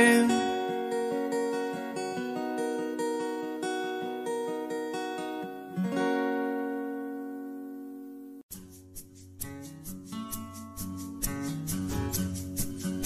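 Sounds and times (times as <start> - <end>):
guitar picking single notes: 0.0 - 8.4.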